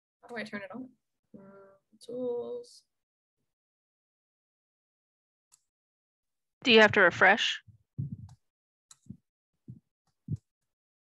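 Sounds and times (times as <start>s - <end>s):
soft low thumps: 6.7s - 8.4s, 9.0s - 10.5s.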